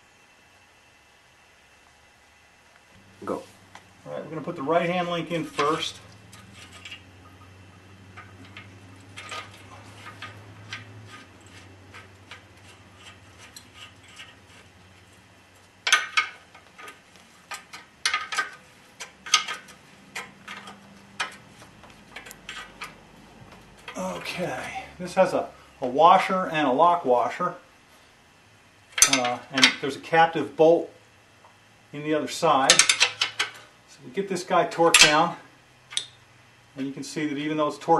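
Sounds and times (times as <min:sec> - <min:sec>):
hand tools clinking on metal parts: 0:05.3 - 0:07.4, 0:08.1 - 0:14.7, 0:15.8 - 0:23.0, 0:29.0 - 0:29.8, 0:32.7 - 0:33.6, 0:34.9 - 0:35.3.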